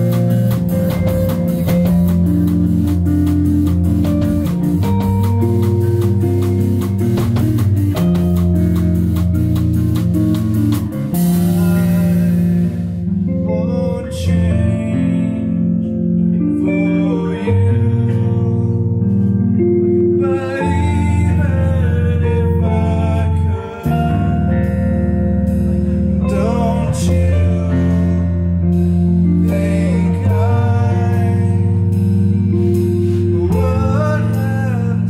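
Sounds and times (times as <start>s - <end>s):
drum kit: 0.0s - 13.4s, 23.8s - 35.0s
bass guitar: 0.0s - 35.0s
electric guitar: 0.0s - 35.0s.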